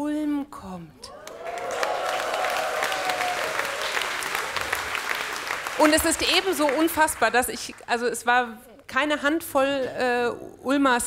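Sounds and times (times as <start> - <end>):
long drawn-out cheer: 1.0 - 6.9
audience clapping: 1.1 - 8.1.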